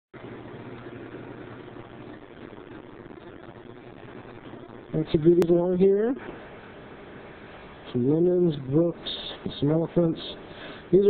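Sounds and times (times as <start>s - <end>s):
low hum: 0.2s - 11.0s.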